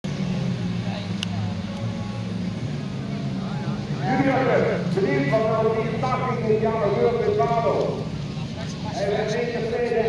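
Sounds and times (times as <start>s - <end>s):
race car engines droning: 0.0s - 10.0s
faint voices: 0.6s - 10.0s.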